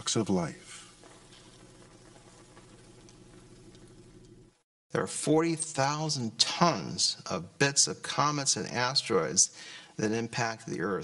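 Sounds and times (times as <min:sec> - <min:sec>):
faint steady hiss: 0:00.0 - 0:04.6, 0:05.4 - 0:11.0.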